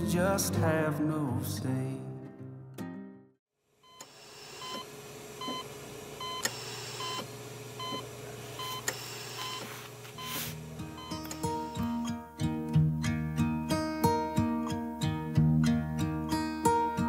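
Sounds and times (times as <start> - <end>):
soft guitar music: 0.0 - 3.3, 10.6 - 17.0
patient monitor beeping: 3.8 - 12.1.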